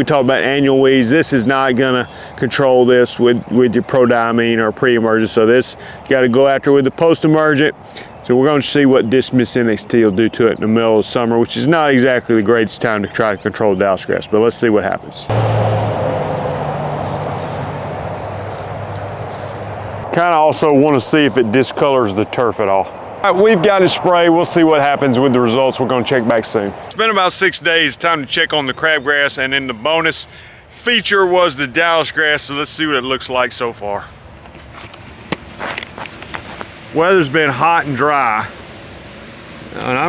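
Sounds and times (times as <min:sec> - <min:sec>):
footsteps on grass: 0:17.0 - 0:20.0, 0:34.5 - 0:36.8.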